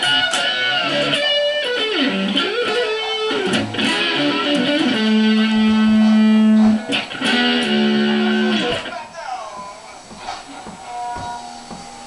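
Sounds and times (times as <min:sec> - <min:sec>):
electric guitar blues lead: 0:00.0 - 0:11.8.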